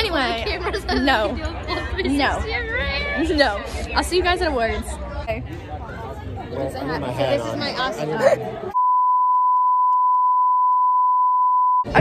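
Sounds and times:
steady test tone beep: 8.8 - 11.9.

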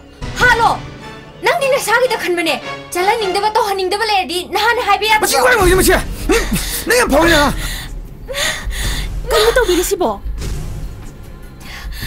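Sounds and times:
woman gasping: 7.6 - 9.8.

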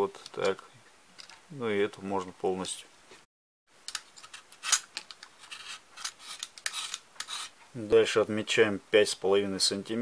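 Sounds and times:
knife scraping bark: 5.4 - 7.6.

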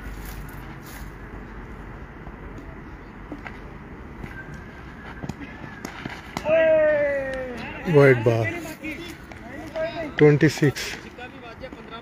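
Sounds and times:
man's loud drawn-out shout: 6.4 - 7.8.

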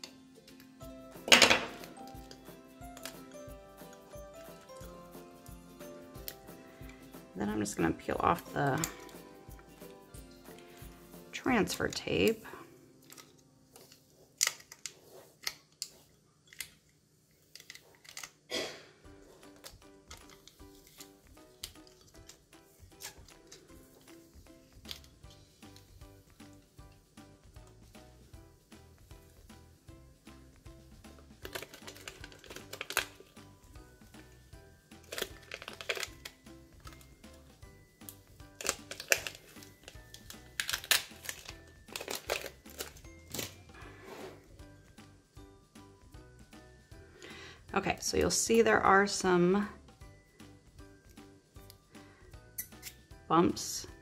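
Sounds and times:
soft background music: 0.0 - 54.0
plastic tape crinkling and peeling: 19.4 - 23.7, 31.4 - 33.4, 35.0 - 37.1, 38.5 - 43.6.

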